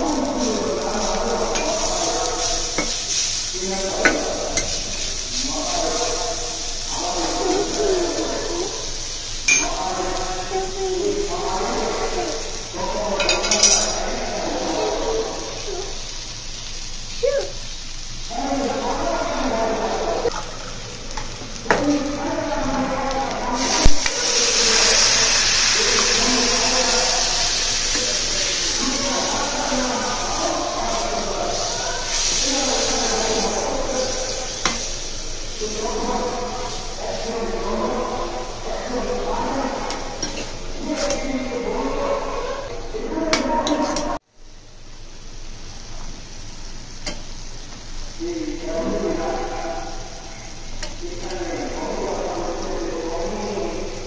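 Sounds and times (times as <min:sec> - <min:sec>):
voices talking: 0:00.0 - 0:44.2, 0:48.1 - 0:54.0
onions sizzling in a pot: 0:00.0 - 0:54.0.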